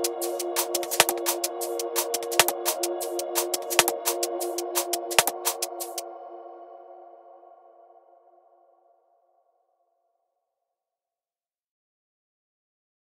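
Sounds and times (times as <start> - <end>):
drum and bass drums: 0.0 - 6.0
held synth chord: 0.0 - 8.6.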